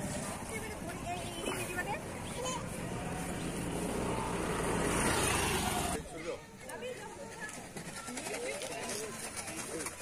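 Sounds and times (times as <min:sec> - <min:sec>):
motor vehicle running: 0:00.0 - 0:06.0
faint crowd voices: 0:00.0 - 0:10.0.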